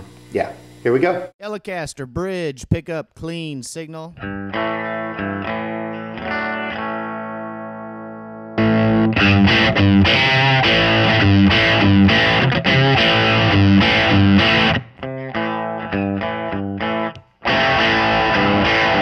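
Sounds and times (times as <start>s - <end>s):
electric guitar strumming: 4.1s - 19.0s
electric guitar chords ringing: 4.2s - 19.0s.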